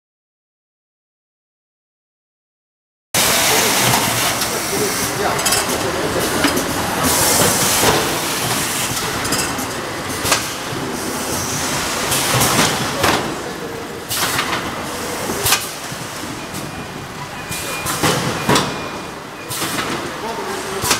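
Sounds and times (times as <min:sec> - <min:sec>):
machinery and conveyor clattering: 0:03.2 - 0:20.9.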